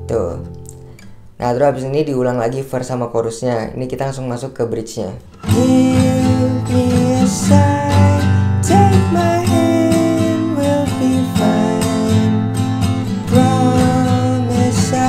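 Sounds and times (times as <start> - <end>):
acoustic guitar strumming: 0.0 - 1.8, 5.2 - 15.0
person singing: 5.4 - 15.0.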